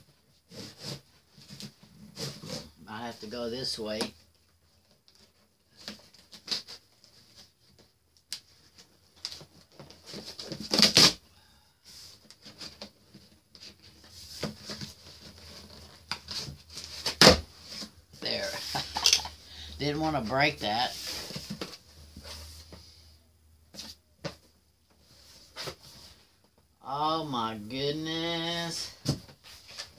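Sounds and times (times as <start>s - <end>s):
cardboard box tape being cut: 10.2s - 11.2s.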